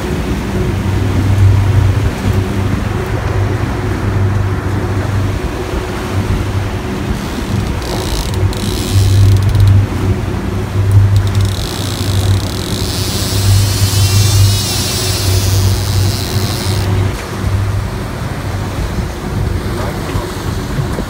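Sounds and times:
boat engine drone: 0:00.0 - 0:21.0
wind and water rushing: 0:00.0 - 0:21.0.

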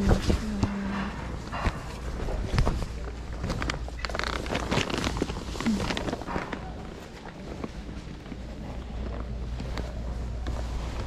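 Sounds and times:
cloth rustling: 0:01.6 - 0:11.0.

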